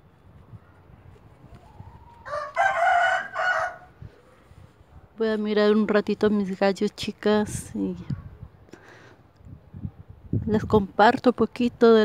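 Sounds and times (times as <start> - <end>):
rooster crowing: 1.8 - 4.0.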